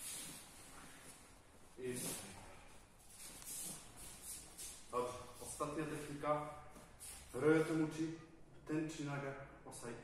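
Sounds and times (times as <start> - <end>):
bare feet on foam mats: 0.0 - 7.5.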